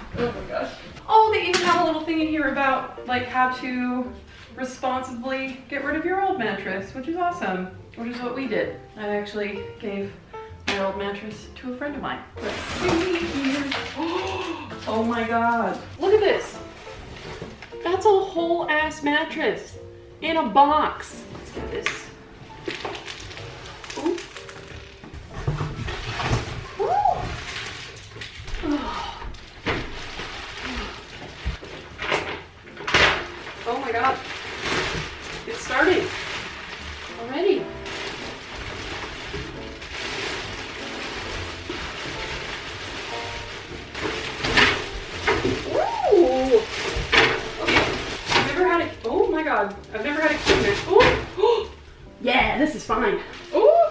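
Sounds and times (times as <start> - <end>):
plastic and cardboard crinkling: 0.0 - 9.7, 10.7 - 19.4, 20.9 - 53.9
background music: 0.0 - 53.9.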